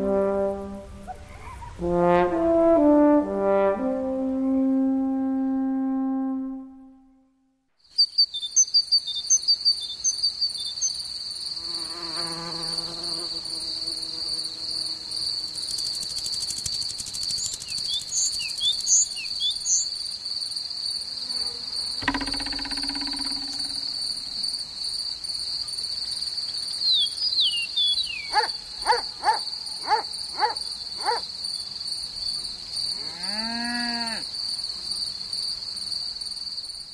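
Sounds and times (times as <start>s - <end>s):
cricket trill: 7.9s - 36.9s
dull thump: 22.0s - 24.4s.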